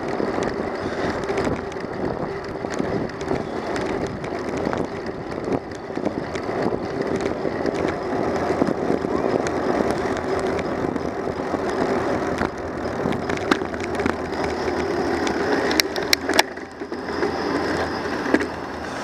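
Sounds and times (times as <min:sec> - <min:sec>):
bicycle tyre rumble on asphalt: 0:00.0 - 0:19.0
rattling clicks: 0:00.3 - 0:19.0.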